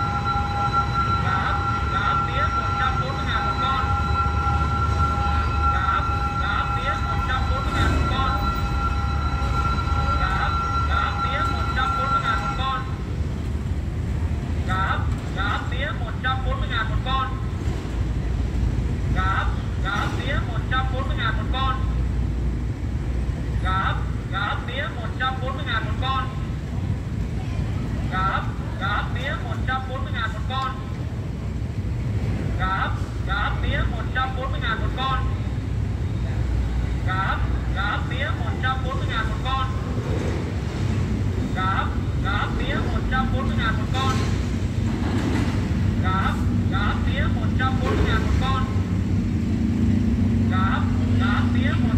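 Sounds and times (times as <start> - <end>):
steady low rumble: 0.0 - 51.9
recorded voice warning from loudspeaker: 0.1 - 13.0, 14.6 - 17.5, 19.1 - 22.0, 23.6 - 26.5, 28.1 - 30.9, 32.6 - 35.5, 37.0 - 39.9, 41.4 - 44.4, 46.0 - 48.9, 50.4 - 51.9.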